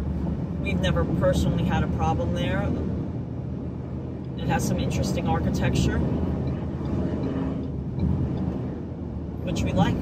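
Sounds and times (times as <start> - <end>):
road and tyre rumble: 0.0 - 10.0.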